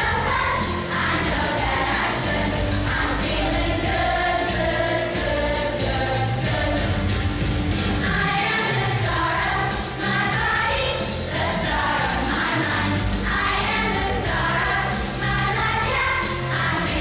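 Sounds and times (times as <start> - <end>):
children's choir singing: 0.0 - 17.0
low instrumental accompaniment: 0.0 - 17.0.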